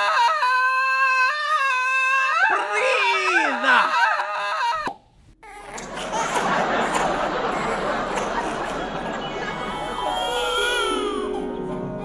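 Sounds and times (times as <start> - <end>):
woman screaming: 0.0 - 4.9.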